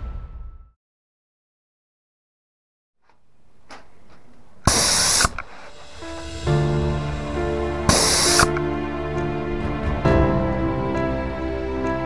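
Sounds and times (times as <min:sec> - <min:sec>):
background music: 0:03.4 - 0:12.0
paint sprayer hissing: 0:03.6 - 0:06.2, 0:07.9 - 0:08.7.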